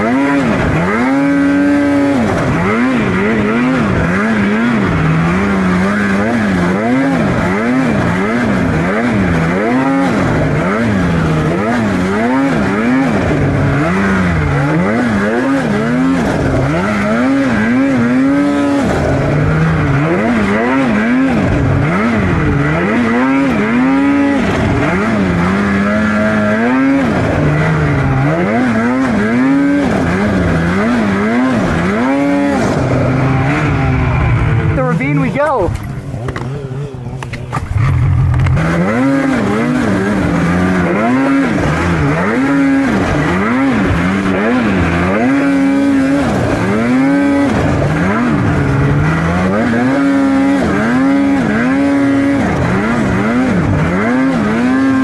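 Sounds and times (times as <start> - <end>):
snowmobile engine revving: 0.0 - 55.0.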